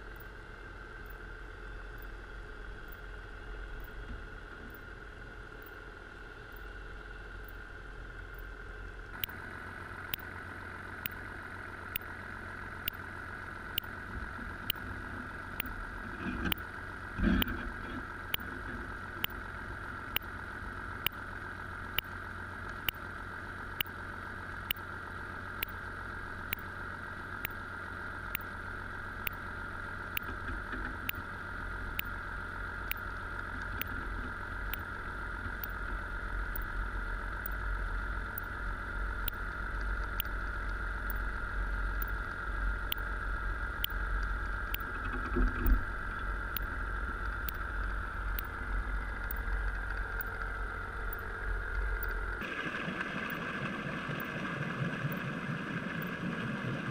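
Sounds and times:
underwater boat engine drone: 0.0 - 56.9
sharp ticks: 1.0 - 1.2, 1.9 - 2.2, 2.8 - 3.1, 7.4 - 7.6, 9.1 - 9.4, 10.1 - 10.4, 11.0 - 11.3, 11.9 - 12.1, 12.8 - 13.0, 13.7 - 14.0, 14.6 - 14.9, 15.5 - 15.8, 16.4 - 16.7, 18.3 - 19.4, 20.1 - 20.4, 21.0 - 21.2, 21.9 - 23.0, 23.8 - 24.0, 24.6 - 24.9, 25.6 - 25.8, 26.5 - 26.7, 27.4 - 27.6, 28.3 - 28.5, 29.2 - 29.4, 30.1 - 31.3, 31.9 - 32.2, 32.8 - 34.0, 34.7 - 35.9, 36.5 - 36.7, 37.4 - 37.7, 38.3 - 38.6, 39.2 - 43.1, 43.7 - 52.4.

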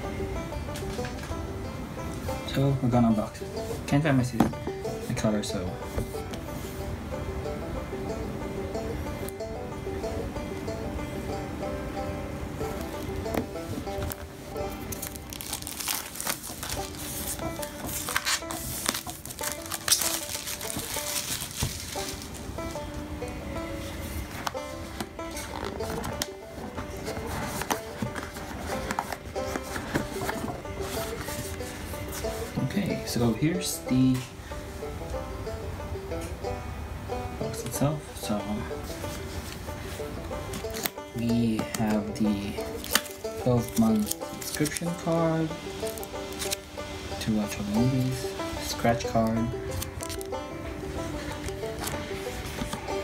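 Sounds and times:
background music: 0.0 - 53.0
plastic shrink-wrap crinkling: 14.8 - 22.8, 42.6 - 46.6, 49.7 - 50.4.

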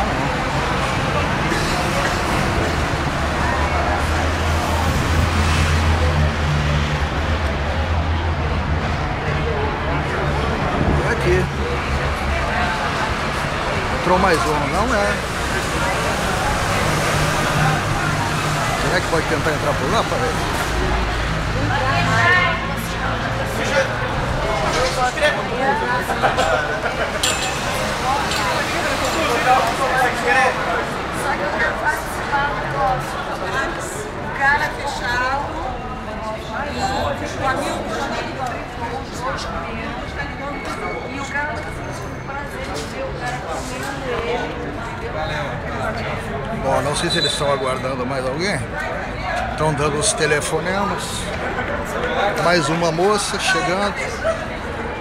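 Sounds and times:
background chatter: 0.0 - 55.0
crowd talking: 0.0 - 55.0
traffic rumble: 0.0 - 55.0.

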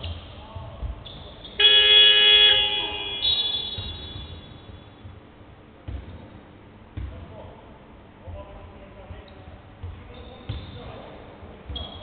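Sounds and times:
shot clock buzzer horn: 1.6 - 4.4.

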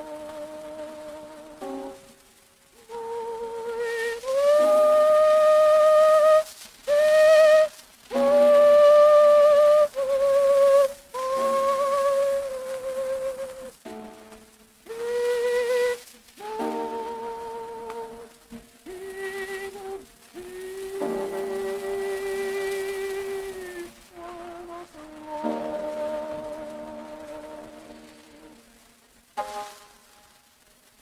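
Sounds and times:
soprano voice singing: 0.0 - 13.9, 14.8 - 28.8
faint surface hiss: 0.0 - 31.0
piano accompaniment: 0.0 - 31.0.

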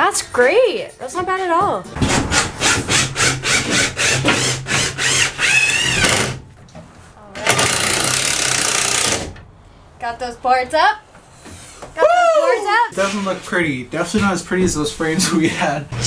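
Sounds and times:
steady harsh noise: 1.8 - 6.4
hand saw cutting wood: 2.0 - 6.4, 7.4 - 9.4.

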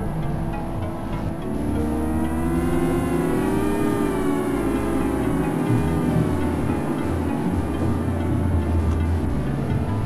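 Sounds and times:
gliding synth tones: 0.0 - 10.0
synthesizer drone: 0.0 - 10.0.

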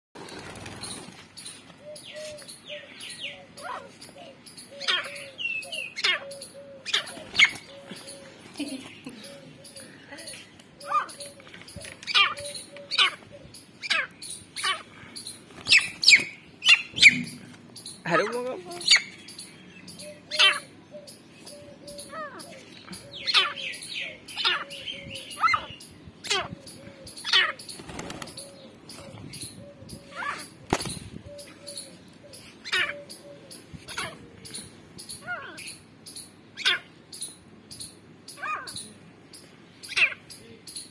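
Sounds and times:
bird wings flapping: 0.2 - 1.4, 27.8 - 28.4, 30.6 - 31.0
francolins calling: 0.2 - 40.9.

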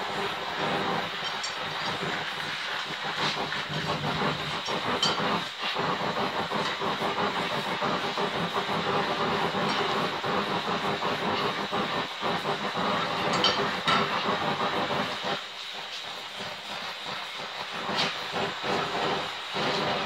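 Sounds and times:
torch flame hissing: 0.0 - 20.0.

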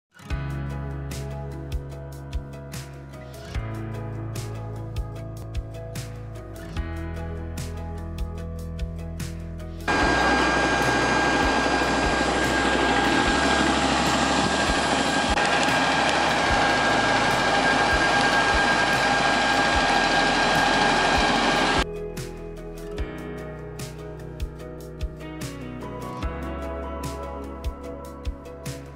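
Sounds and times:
jet engines roaring with whine: 9.9 - 21.8.

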